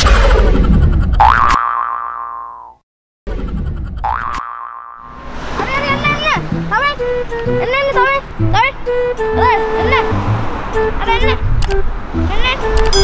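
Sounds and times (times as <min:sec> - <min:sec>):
springy rising boing: 0:01.2 - 0:02.8, 0:03.6 - 0:05.2
person speaking: 0:05.5 - 0:10.2.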